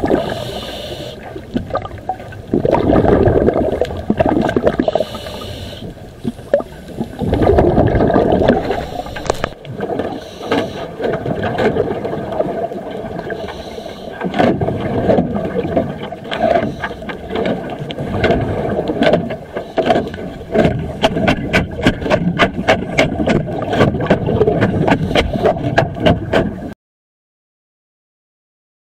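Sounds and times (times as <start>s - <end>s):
underwater scraping: 0.0s - 26.8s.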